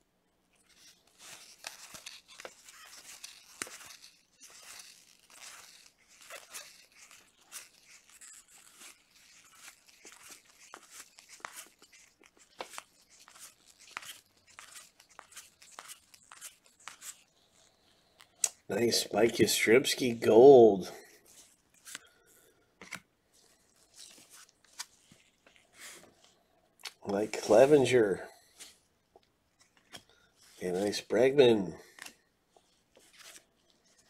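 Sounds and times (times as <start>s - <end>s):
cards sliding and clicking: 0.7s - 20.4s, 21.2s - 22.1s, 22.8s - 28.8s, 29.6s - 31.3s, 31.9s - 34.0s.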